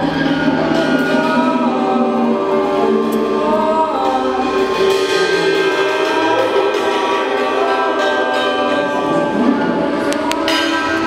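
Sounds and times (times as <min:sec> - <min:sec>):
cymbals ringing: 0:00.0 - 0:11.0.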